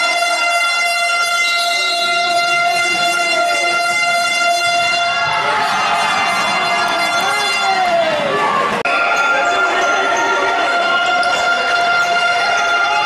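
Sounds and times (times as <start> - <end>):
air horn steady note: 0.0 - 7.9.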